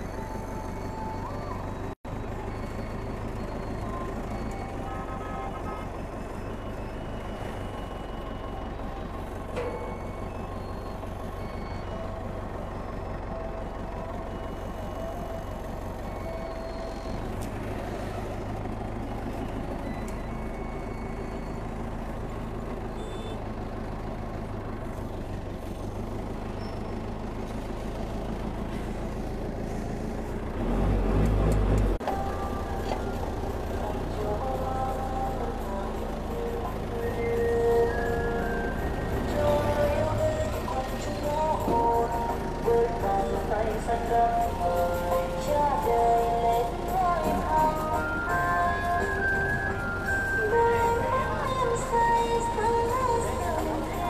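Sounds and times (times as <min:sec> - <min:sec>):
forklift engine running: 0:00.0 - 0:54.0.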